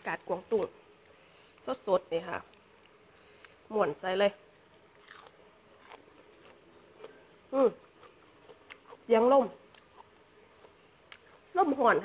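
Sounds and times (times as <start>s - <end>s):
chewing crunchy leaves: 1.5s - 12.0s.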